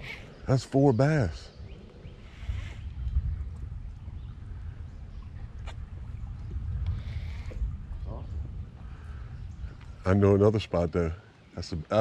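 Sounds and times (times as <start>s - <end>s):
wind buffeting microphone: 0.0s - 11.2s.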